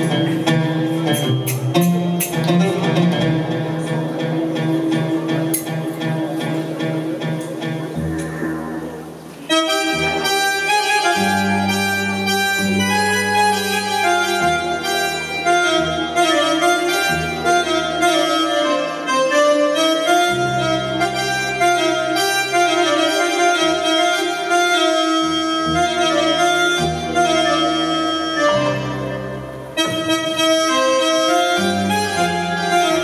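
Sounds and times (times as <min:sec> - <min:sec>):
held bass notes: 0:00.0 - 0:33.0
plucked notes: 0:00.0 - 0:33.0
reedy melody: 0:00.0 - 0:33.0.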